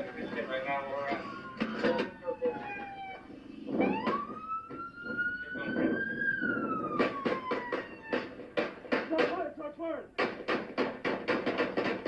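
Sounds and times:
police siren wailing: 0.0s - 9.2s
sharp knocks or bangs: 3.7s - 9.5s, 10.2s - 12.0s.

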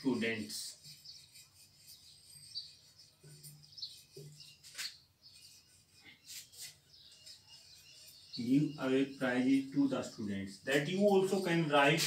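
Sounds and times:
marker squeaking on whiteboard: 0.0s - 12.0s.

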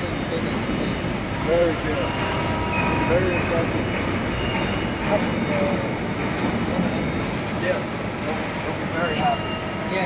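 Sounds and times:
machinery humming and hissing: 0.0s - 10.0s.

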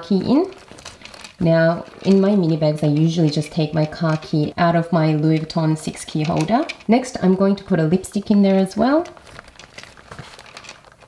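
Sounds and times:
rustling and crinkling in handbag: 0.0s - 11.0s.

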